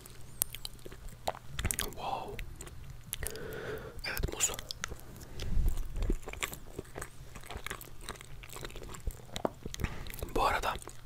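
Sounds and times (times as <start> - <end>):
chewing cake: 0.0 - 11.0
mouth clicks: 0.0 - 11.0.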